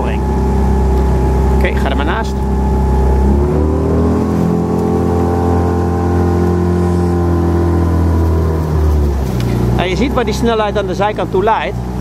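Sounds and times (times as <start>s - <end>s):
boat motor revving: 0.0s - 12.0s.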